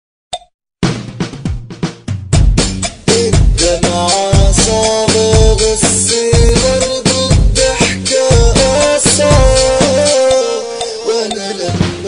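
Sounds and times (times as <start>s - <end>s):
drum-heavy electronic beat with bass: 0.8s - 12.0s.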